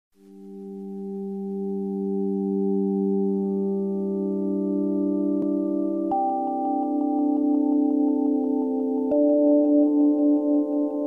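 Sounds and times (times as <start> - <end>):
synthesizer pad chord: 0.8 - 11.0.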